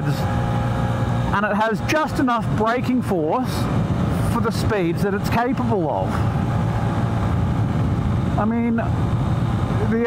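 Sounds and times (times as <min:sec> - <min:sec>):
motorcycle engine running steadily: 0:00.0 - 0:10.0
road noise: 0:00.0 - 0:10.0.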